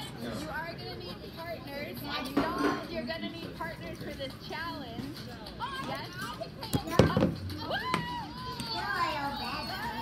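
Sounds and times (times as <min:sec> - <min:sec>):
children calling and chattering: 0:04.3 - 0:10.0.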